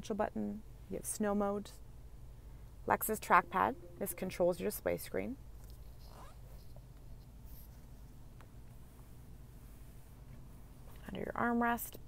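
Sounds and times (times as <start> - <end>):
steady low hum: 0.0 - 12.0
faint rubbing of camera: 5.6 - 11.0.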